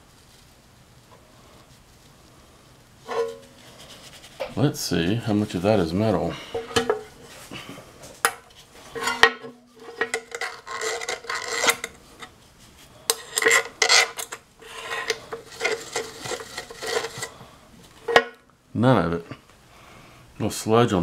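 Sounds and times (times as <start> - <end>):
faint steady hum: 0.0 - 21.0
gloved fingers scraping metal: 3.0 - 4.4, 8.9 - 12.3, 13.1 - 17.4.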